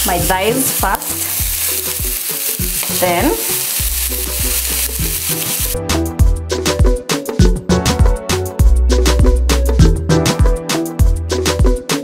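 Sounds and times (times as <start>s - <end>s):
chicken sizzling in a frying pan: 0.0s - 5.8s
music with beat and deep bass: 5.7s - 12.0s.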